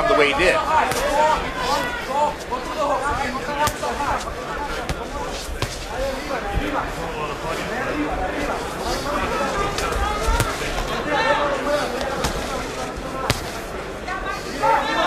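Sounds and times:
crowd voices and shouts: 0.0s - 15.0s
gloved punches smacking: 0.7s - 1.9s, 3.6s - 6.1s, 10.4s - 10.8s, 13.2s - 13.7s.

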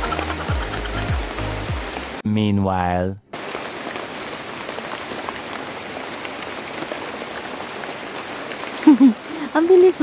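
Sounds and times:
heavy rain through foliage: 0.0s - 10.0s.

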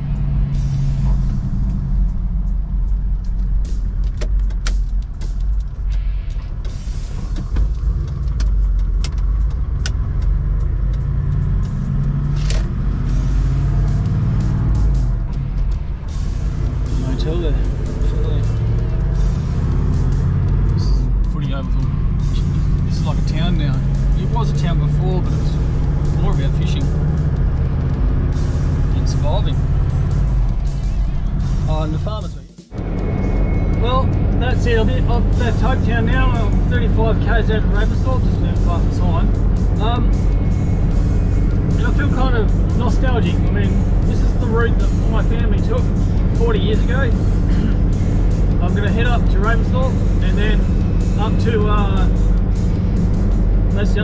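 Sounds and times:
car engine and road noise: 0.0s - 54.0s
music playing: 0.0s - 54.0s.

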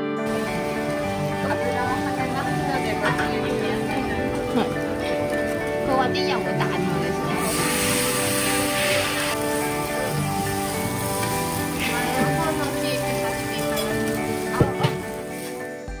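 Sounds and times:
background music sustained tones: 0.0s - 16.0s
griddle sizzling: 0.2s - 15.9s.

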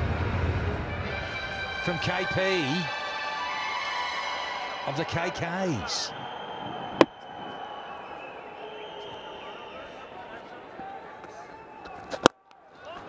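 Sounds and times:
stadium crowd murmur: 4.8s - 13.0s.

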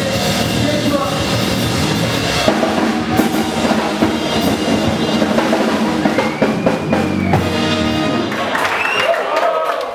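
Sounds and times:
sharp drum strokes: 0.0s - 8.5s
band music: 0.0s - 9.9s.

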